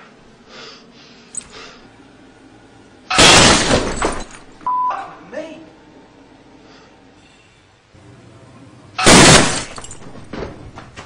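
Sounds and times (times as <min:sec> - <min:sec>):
glass breaking: 0:03.1 - 0:04.5, 0:09.0 - 0:10.2.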